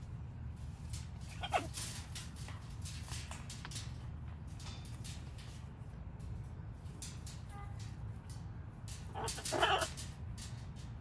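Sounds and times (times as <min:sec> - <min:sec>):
birds tapping on metal mesh: 0:00.8 - 0:11.0.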